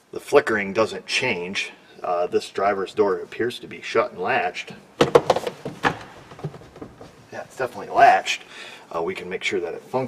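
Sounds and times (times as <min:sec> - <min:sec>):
car door knocks: 0:05.0 - 0:07.2.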